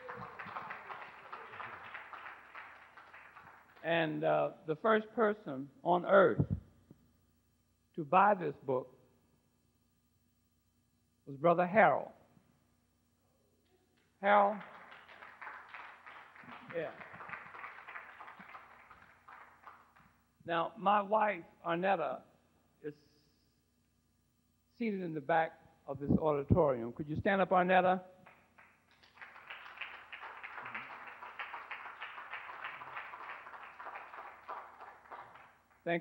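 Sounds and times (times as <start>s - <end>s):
audience applauding: 0.0s - 3.9s, 14.5s - 20.0s, 28.3s - 35.8s.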